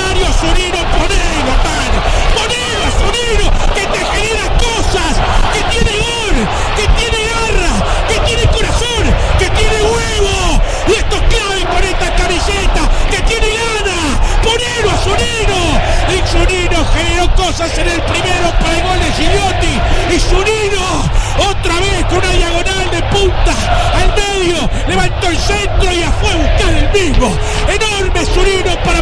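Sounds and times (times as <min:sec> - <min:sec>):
commentator shouting excitedly: 0:00.0 - 0:29.0.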